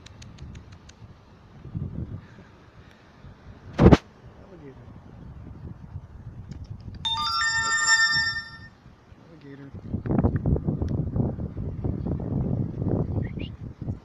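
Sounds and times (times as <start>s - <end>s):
electronic chime: 7.1s - 8.7s.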